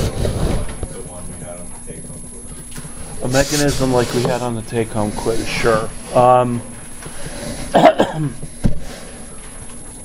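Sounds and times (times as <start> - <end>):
person coughing: 7.7 - 8.4.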